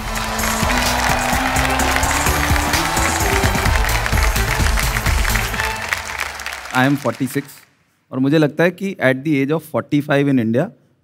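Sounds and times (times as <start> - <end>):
show music with low notes: 0.0 - 6.7
audience applause: 0.0 - 7.7.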